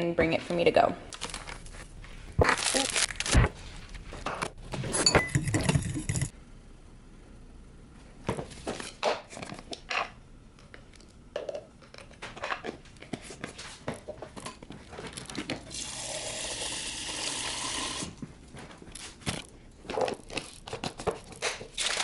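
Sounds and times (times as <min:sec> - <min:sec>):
water running into cup: 0:15.7 - 0:18.2.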